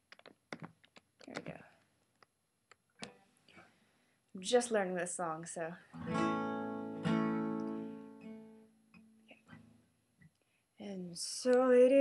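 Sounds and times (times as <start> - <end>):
acoustic guitar played quietly: 5.9 - 9.9.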